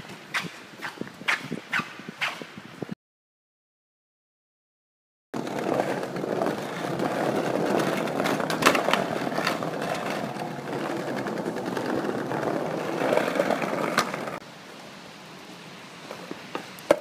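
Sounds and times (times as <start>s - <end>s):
skateboard clacks: 5.4s - 14.4s, 16.1s - 17.0s
skateboard wheels rolling on bricks: 5.4s - 14.4s, 16.0s - 17.0s.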